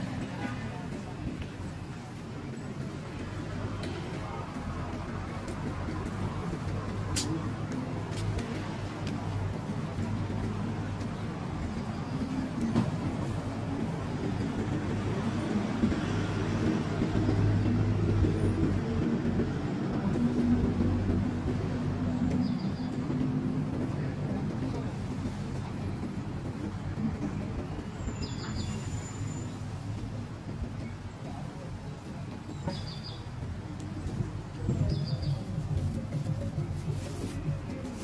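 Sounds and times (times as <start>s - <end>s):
street traffic rumble: 0.0s - 38.0s.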